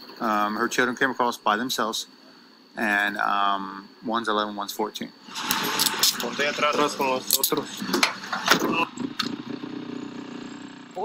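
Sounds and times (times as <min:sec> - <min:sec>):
voices: 0:00.1 - 0:05.2, 0:06.1 - 0:09.4
dirt bike engine idling: 0:06.5 - 0:11.0.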